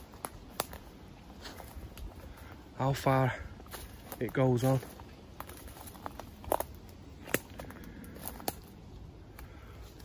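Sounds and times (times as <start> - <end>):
twigs snapping underfoot: 0.0 - 2.7, 3.6 - 10.0
footsteps through dry leaves: 0.0 - 8.8.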